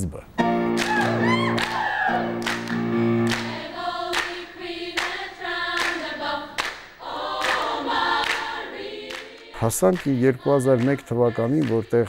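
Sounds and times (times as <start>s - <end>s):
choir singing: 1.2s - 12.0s.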